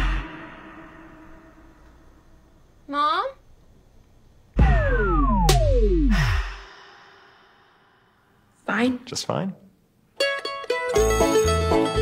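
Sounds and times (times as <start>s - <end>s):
breathy sigh: 0.0s - 1.9s.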